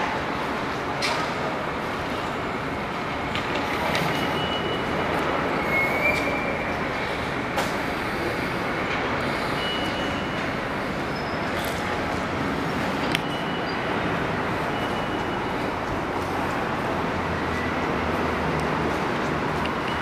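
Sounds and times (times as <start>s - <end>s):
metro train rumbling: 0.0s - 20.0s.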